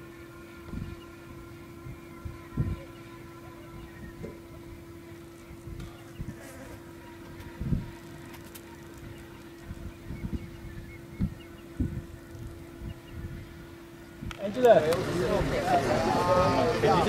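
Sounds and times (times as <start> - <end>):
steady buzzing hum: 0.0 - 17.0
dull low thumps: 9.6 - 14.3.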